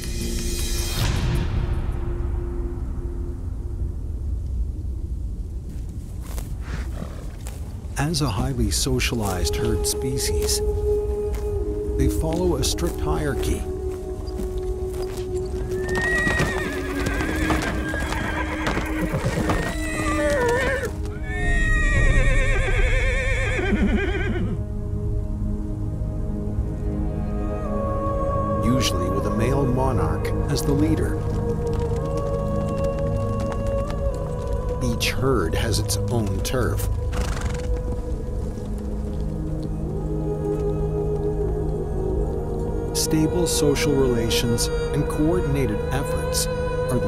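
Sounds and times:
horse snorting: 0:06.2 - 0:07.8, 0:15.2 - 0:21.7
horses neighing: 0:06.6 - 0:07.8, 0:12.3 - 0:24.6, 0:30.7 - 0:39.8
music of long held notes: 0:07.4 - 0:47.0.

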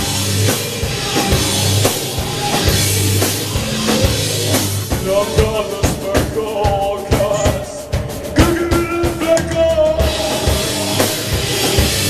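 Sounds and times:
electric bass: 0:00.0 - 0:06.4, 0:07.2 - 0:12.0
electric guitar: 0:00.0 - 0:06.4
drum kit strikes: 0:00.0 - 0:12.0.

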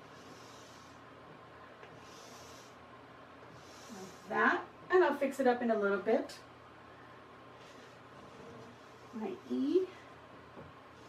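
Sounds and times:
small fan humming: 0:00.0 - 0:11.0.

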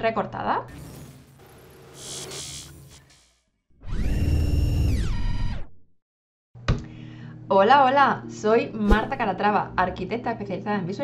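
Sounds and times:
loud electronic buzz: 0:00.7 - 0:05.7.

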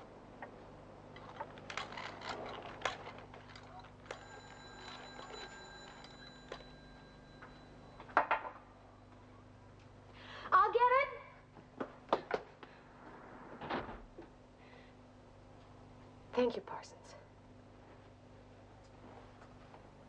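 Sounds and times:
bell ringing: 0:04.0 - 0:08.2.

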